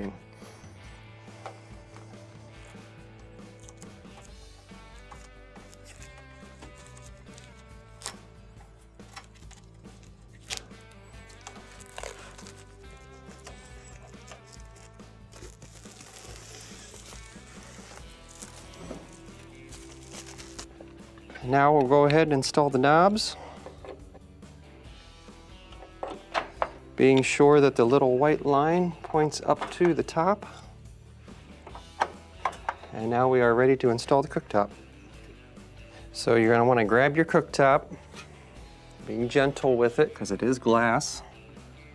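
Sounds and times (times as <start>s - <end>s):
quiet background music: 0.0s - 41.9s
plastic film peeling rustle: 5.0s - 8.3s, 9.0s - 20.7s.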